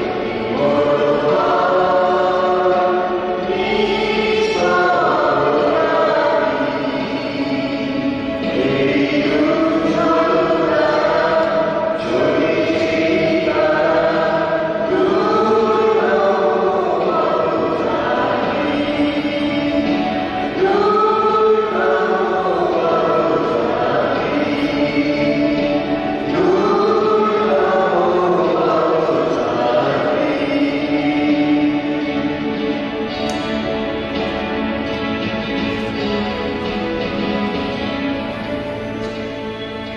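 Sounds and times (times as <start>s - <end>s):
choir singing a hymn: 0.0s - 39.9s.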